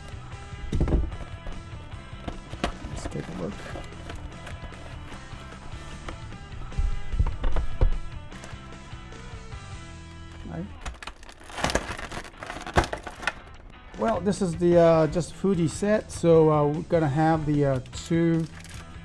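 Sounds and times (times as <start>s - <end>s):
background music: 0.0s - 19.0s
plastic rustling and clicks: 2.2s - 6.1s, 10.3s - 13.7s, 17.7s - 19.0s.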